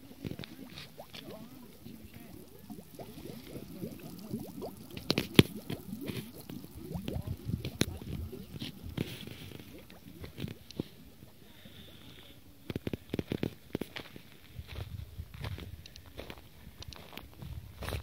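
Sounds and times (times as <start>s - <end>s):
gas bubbling through water: 0.0s - 13.9s.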